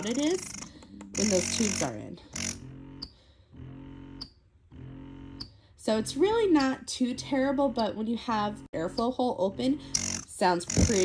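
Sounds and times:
breast pump suction humming: 0:00.0 - 0:11.0.

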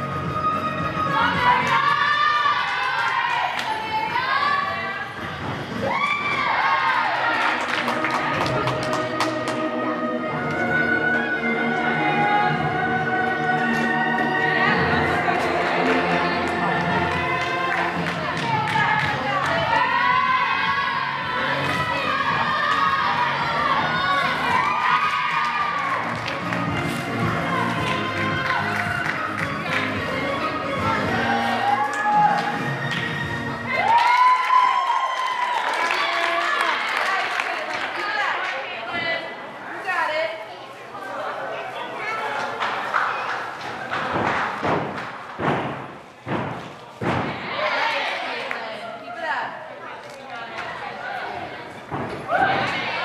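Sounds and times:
girls cheering and shouting: 0:01.1 - 0:05.0, 0:05.8 - 0:07.6, 0:16.8 - 0:26.1, 0:27.3 - 0:29.3, 0:52.2 - 0:53.0.

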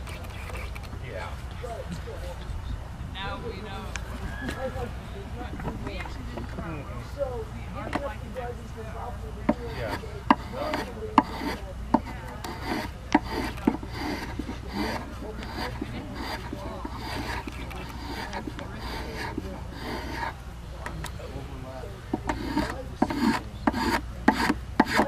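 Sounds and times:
spokeshave shaving wood: 0:00.0 - 0:01.6, 0:03.9 - 0:25.0
sharp wooden knocks: 0:22.1 - 0:25.0.

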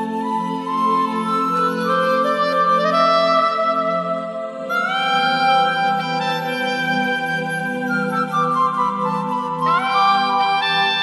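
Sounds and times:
soft sustained backing: 0:00.0 - 0:11.0.

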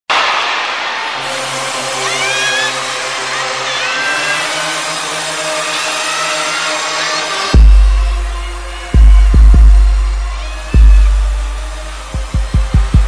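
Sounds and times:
arena crowd screaming and cheering: 0:00.1 - 0:13.0
single shrill screams: 0:01.2 - 0:07.6
low steady note: 0:07.6 - 0:13.0.

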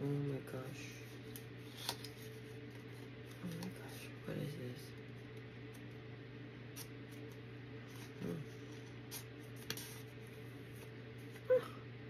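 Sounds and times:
steady low hum: 0:00.0 - 0:12.0
paper card rustling: 0:01.1 - 0:04.0, 0:06.8 - 0:11.4.

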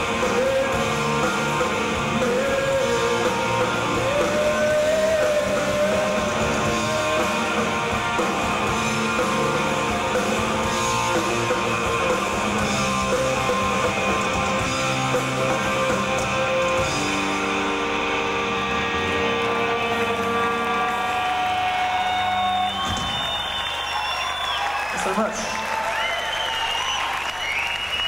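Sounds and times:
loud rock band playing: 0:00.0 - 0:25.8.

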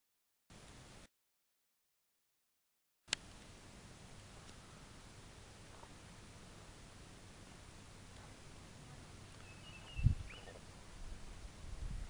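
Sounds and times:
bird call with falling whistle: 0:09.4 - 0:10.6.

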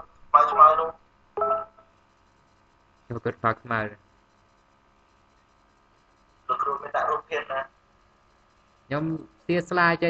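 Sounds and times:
person speaking over video call: 0:00.0 - 0:01.0.

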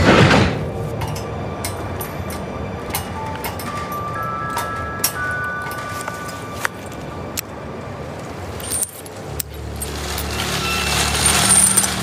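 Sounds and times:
light metallic clicks and jingle: 0:08.6 - 0:09.6.

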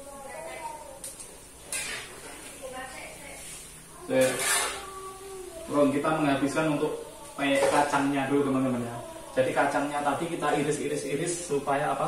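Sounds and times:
crackers frying in hot oil: 0:00.0 - 0:12.0.

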